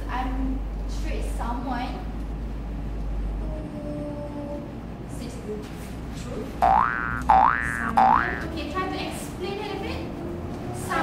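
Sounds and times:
cartoon boing rising glides: 0:06.6 - 0:08.5.

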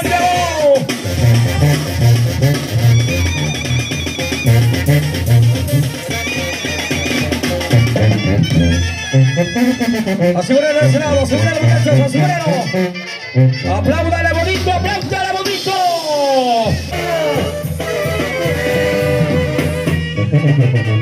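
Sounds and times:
latin brass band music: 0:00.0 - 0:21.0.

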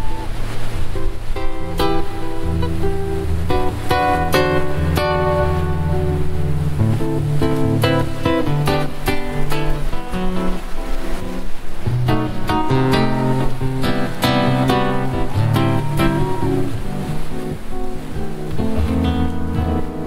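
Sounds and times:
solo classical guitar: 0:00.0 - 0:20.0.

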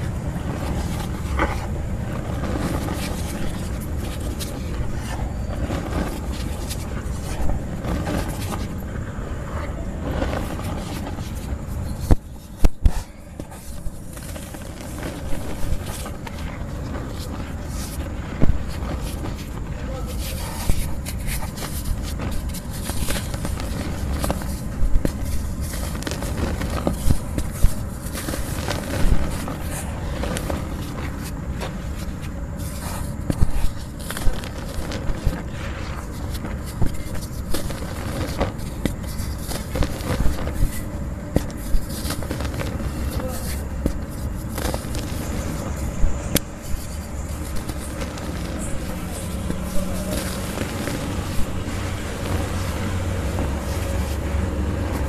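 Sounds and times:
dry cement lumps crumbling: 0:00.0 - 0:55.0
scraping: 0:00.0 - 0:55.0
steady low rumble: 0:00.0 - 0:55.0.

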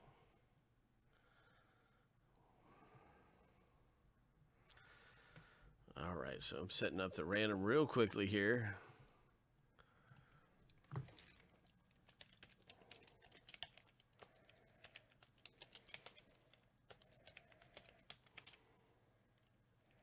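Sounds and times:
typing on computer keyboard: 0:10.8 - 0:18.7.

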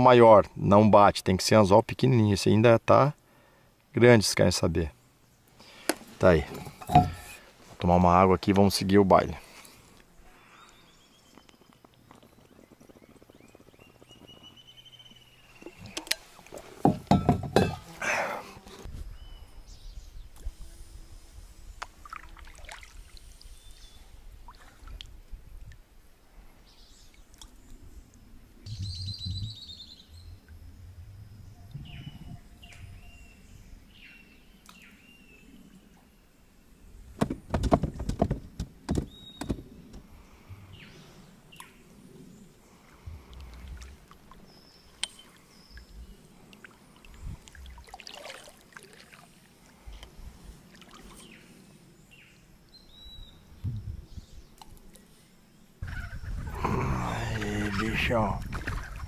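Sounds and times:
kayak paddling: 0:05.7 - 0:07.7, 0:12.3 - 0:18.9, 0:55.8 - 0:59.0
loud knocks and clatter: 0:37.2 - 0:39.6.

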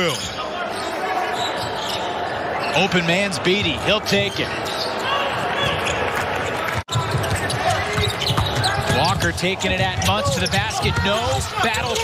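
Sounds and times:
voices on court: 0:00.0 - 0:12.0.

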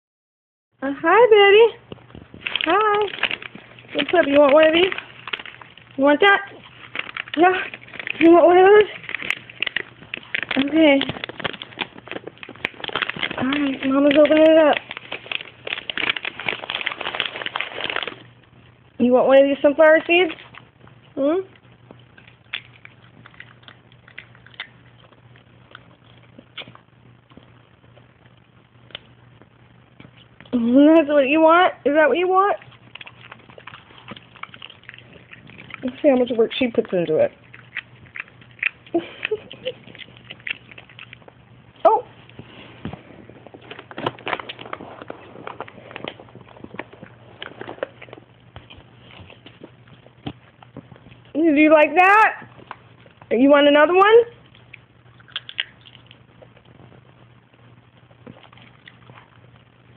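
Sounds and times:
low steady hum: 0:00.8 - 0:59.9
dog mouth smacks and clicks: 0:06.5 - 0:18.2, 0:21.9 - 0:27.5, 0:32.6 - 0:41.4, 0:54.4 - 0:56.7.

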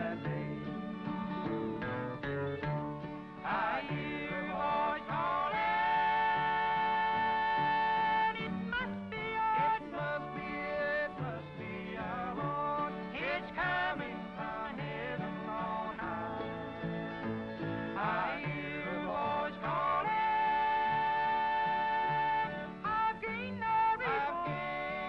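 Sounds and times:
men singing in close harmony: 0:00.0 - 0:00.7, 0:03.4 - 0:25.0
acoustic guitar: 0:00.0 - 0:25.0
mandolin: 0:00.0 - 0:25.0
upright bass: 0:00.0 - 0:25.0.

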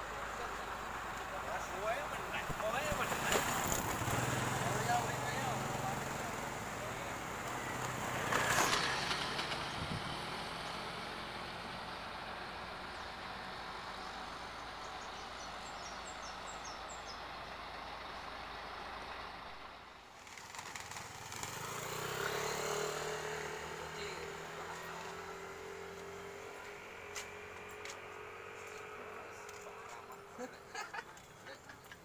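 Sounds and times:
diesel truck engine idling: 0:12.0 - 0:20.1.

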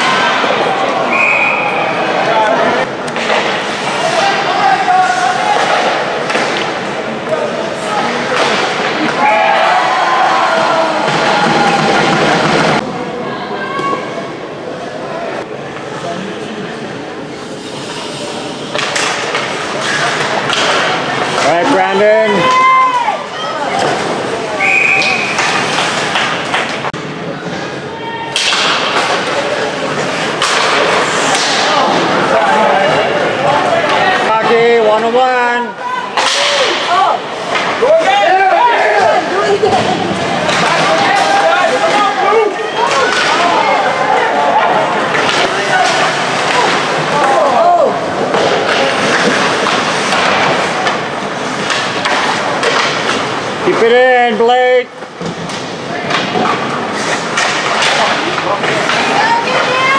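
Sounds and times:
spectators' voices and shouts: 0:00.0 - 0:59.9.

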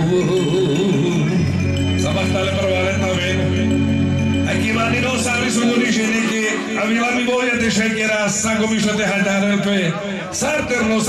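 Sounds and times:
man speaking into a microphone: 0:02.0 - 0:03.7, 0:04.4 - 0:11.0.

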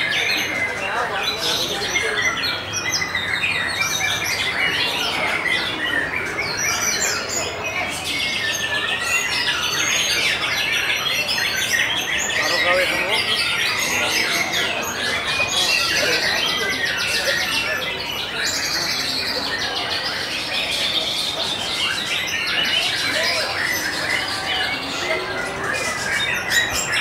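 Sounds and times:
songbirds singing: 0:00.0 - 0:27.0.

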